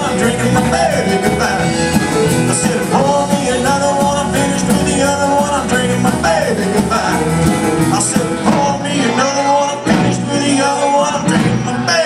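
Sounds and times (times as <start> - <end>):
drum kit: 0.0 - 12.0
guitar: 0.0 - 12.0
live band playing country rock: 0.0 - 12.0.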